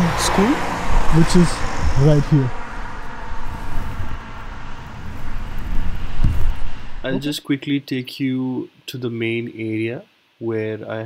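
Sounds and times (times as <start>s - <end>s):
low traffic rumble: 0.0s - 7.5s
steady hiss: 3.3s - 11.0s.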